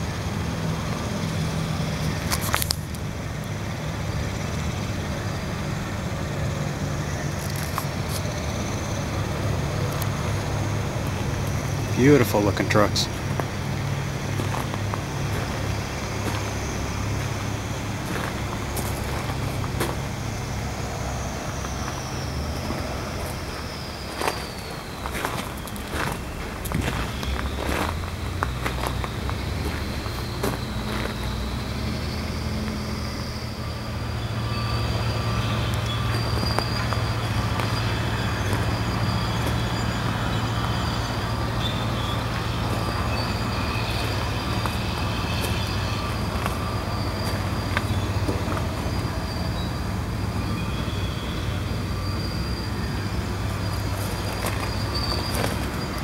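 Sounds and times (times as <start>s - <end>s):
heavy engine running: 0.0s - 56.0s.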